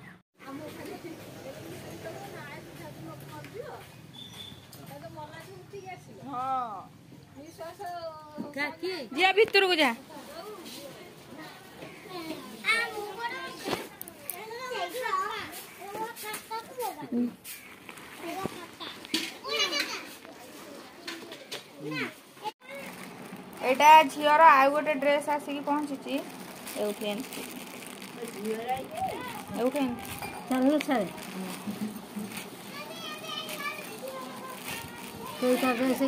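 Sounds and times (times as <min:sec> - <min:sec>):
children chattering: 0:10.0 - 0:26.1, 0:26.7 - 0:36.0.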